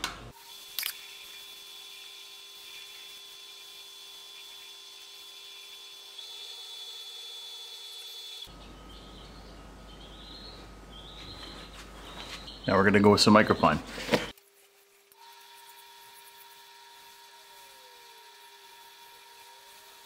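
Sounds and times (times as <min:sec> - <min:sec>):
wood lathe whining: 0:01.1 - 0:08.5, 0:15.2 - 0:20.0.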